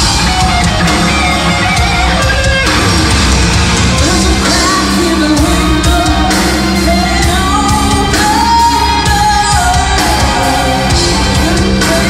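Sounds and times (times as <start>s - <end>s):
metal band playing: 0.0s - 12.0s
woman singing: 3.9s - 12.0s.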